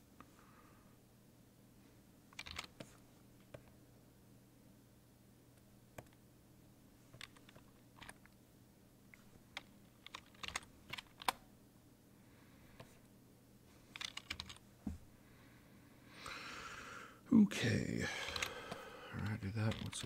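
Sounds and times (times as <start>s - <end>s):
computer keyboard typing: 2.4s - 2.9s, 7.2s - 8.2s, 9.5s - 11.4s, 13.9s - 14.6s, 18.2s - 20.0s.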